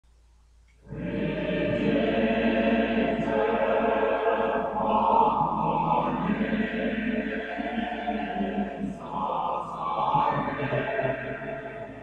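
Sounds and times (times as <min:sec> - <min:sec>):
choir singing held chords: 0:00.8 - 0:12.0.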